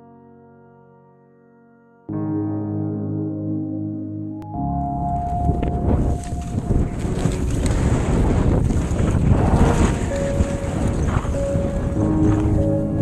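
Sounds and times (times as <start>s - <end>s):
wind rushing over microphone: 5.1s - 13.0s
skis running through snow: 6.0s - 11.8s.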